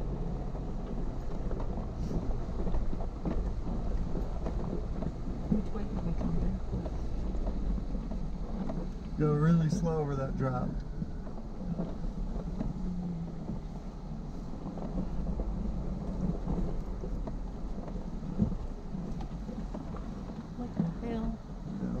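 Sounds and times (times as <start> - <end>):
low engine rumble: 0.0 - 22.0.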